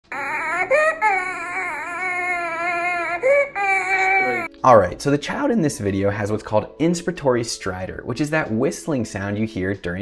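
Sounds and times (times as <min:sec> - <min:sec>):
infant crying: 0:00.0 - 0:04.5.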